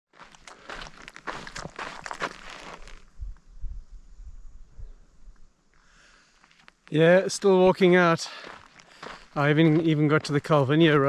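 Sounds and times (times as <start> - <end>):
footsteps crunching on gravel: 0.1 - 3.1, 6.4 - 11.0.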